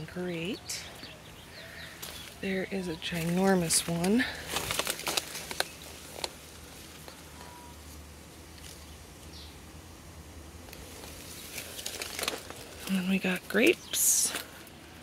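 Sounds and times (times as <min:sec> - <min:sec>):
leaves rustling: 0:00.0 - 0:15.0
steady low background hum: 0:00.0 - 0:15.0.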